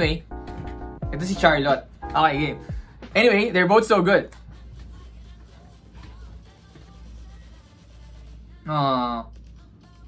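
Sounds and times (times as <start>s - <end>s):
faint music with low bass: 0.0s - 10.0s.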